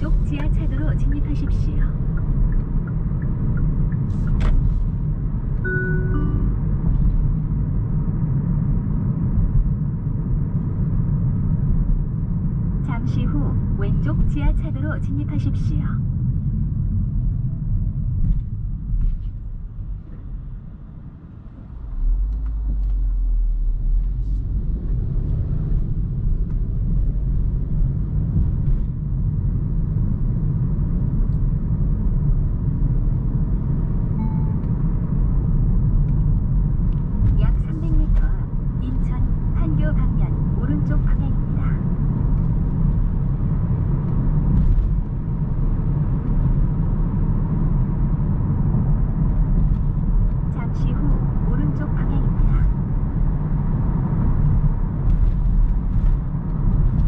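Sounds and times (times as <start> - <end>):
road and tyre rumble: 0.0 - 57.0.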